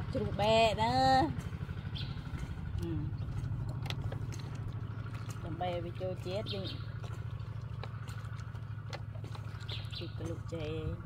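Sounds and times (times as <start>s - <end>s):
woman's voice: 0.0s - 1.4s, 2.7s - 3.3s, 5.4s - 6.8s, 10.0s - 11.0s
engine idling: 0.0s - 11.0s.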